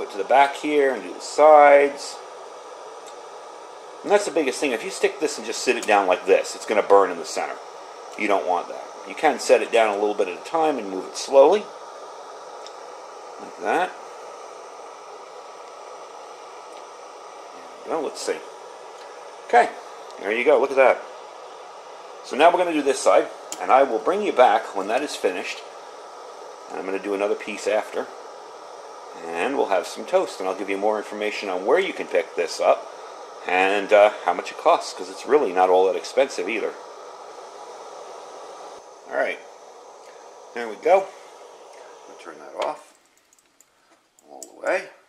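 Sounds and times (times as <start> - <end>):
camp stove burner hissing: 0.0 - 45.0.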